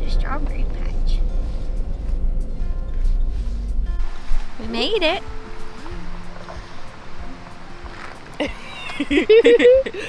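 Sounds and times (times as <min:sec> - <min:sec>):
music playing: 0:00.0 - 0:10.0
road rumble inside car: 0:00.0 - 0:10.0.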